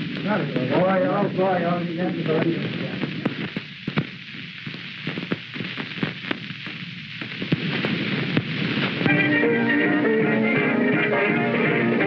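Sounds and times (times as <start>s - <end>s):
film soundtrack hiss and crackle: 0.0s - 12.0s
pops: 2.2s - 9.4s
small band playing: 9.1s - 12.0s.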